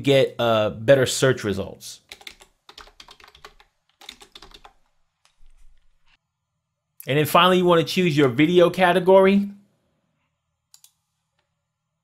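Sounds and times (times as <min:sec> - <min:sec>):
typing on computer keyboard: 0:02.1 - 0:05.4.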